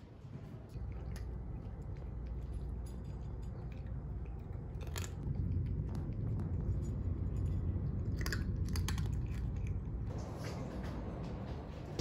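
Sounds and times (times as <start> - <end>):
cat crunching dry kibble: 0.7 - 10.1.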